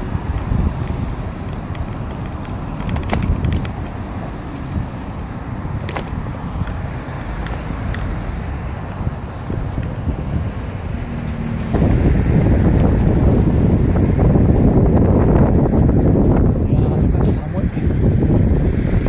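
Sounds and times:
traffic noise: 0.0s - 19.0s
wind buffeting microphone: 0.0s - 19.0s.

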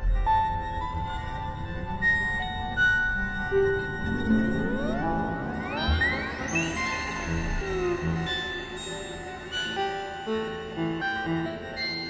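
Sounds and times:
ambient electronic music: 0.0s - 12.0s.

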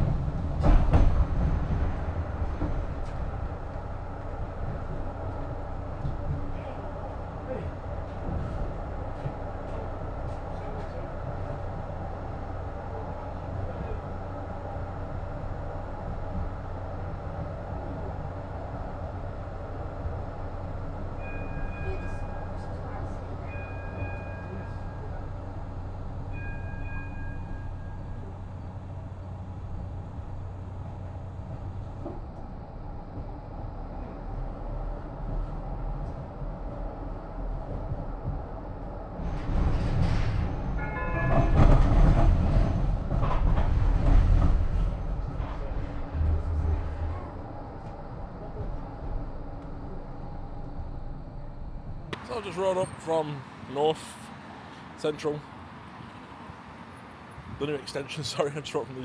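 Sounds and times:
tram running noise: 0.0s - 59.0s.

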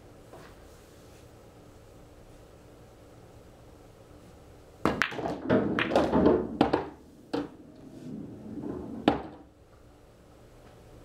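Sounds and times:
cue striking ball: 4.8s - 9.5s
balls rumbling through table: 4.8s - 9.6s
pool balls clicking: 4.8s - 9.6s.

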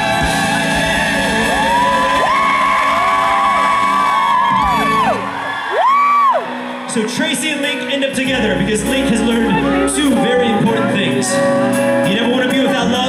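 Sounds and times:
audience whooping: 0.0s - 8.0s
live band playing show tune: 0.0s - 13.0s.

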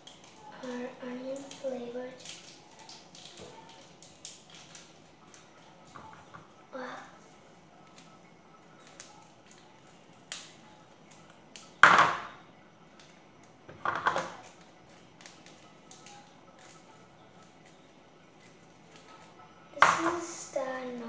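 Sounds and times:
plastic packets crinkling: 0.0s - 6.1s, 7.8s - 11.8s, 12.9s - 19.4s.

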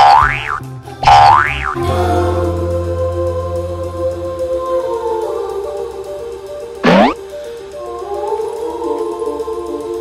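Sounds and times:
comedy boing sound effect: 0.0s - 1.8s, 6.8s - 7.2s
background music: 0.0s - 10.0s.

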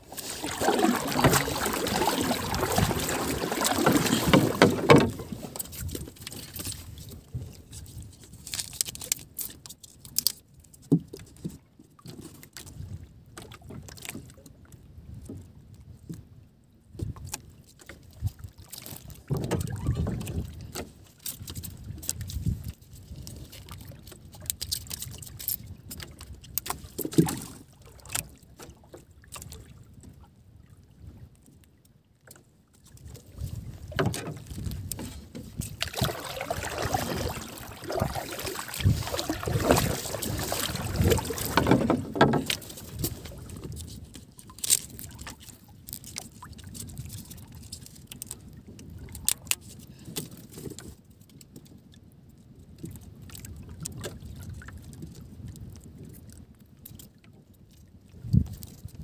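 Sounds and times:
water lapping against boat: 0.0s - 59.0s
knocks and clicks on wooden boat: 0.6s - 6.7s, 10.2s - 12.3s, 19.2s - 22.5s, 25.4s - 29.0s, 33.8s - 44.0s.

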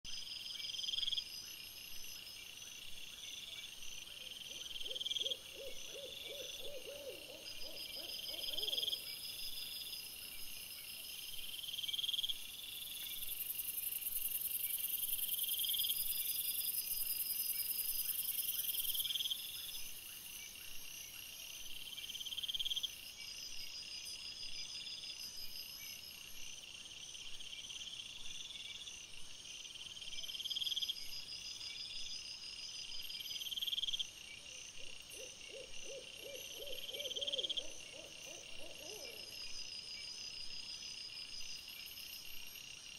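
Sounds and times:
insects chirping trills: 0.1s - 42.9s
lower quavering insect notes: 0.1s - 42.9s.

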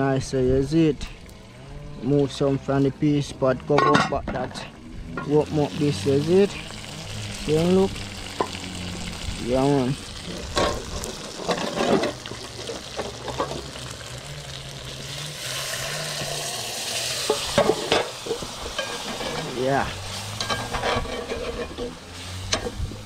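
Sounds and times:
stew sizzling in a pot: 5.0s - 23.0s
metal spoon scraping a pot: 18.6s - 22.8s.

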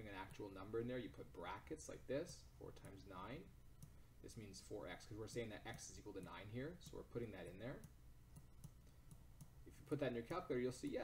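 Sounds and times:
stylus tapping on tablet: 5.1s - 9.6s.

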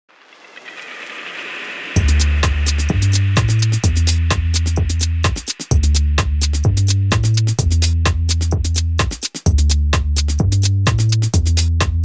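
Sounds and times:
whoosh riser effect: 0.1s - 5.6s
electronic music with heavy bass: 1.8s - 12.0s.

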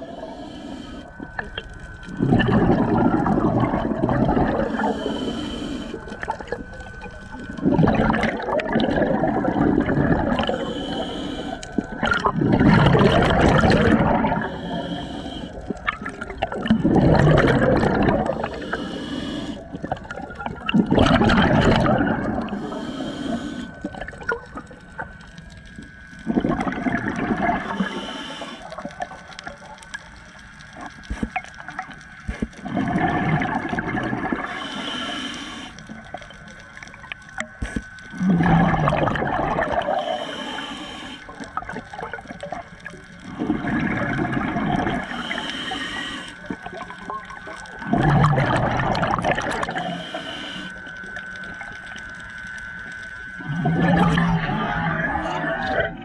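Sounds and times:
regulator inhale hiss: 0.0s - 2.4s, 3.2s - 8.2s, 9.9s - 17.6s, 18.2s - 20.5s, 21.4s - 26.6s, 27.4s - 31.6s, 33.6s - 47.9s, 49.2s - 54.0s
exhaled bubbles gurgling: 0.0s - 56.0s.

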